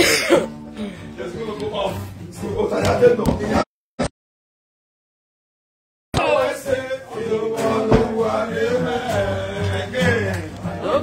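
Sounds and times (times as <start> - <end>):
voices singing a chant: 6.2 - 11.0.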